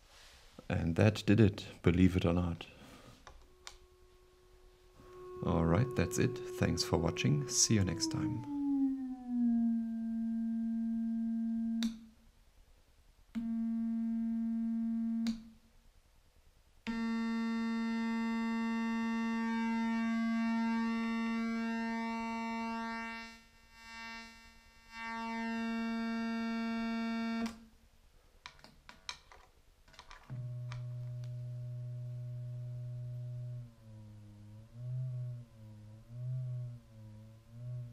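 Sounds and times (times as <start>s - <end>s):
synthesizer tone rich in overtones: 2.8s - 12.0s, 16.9s - 24.3s, 30.3s - 37.9s.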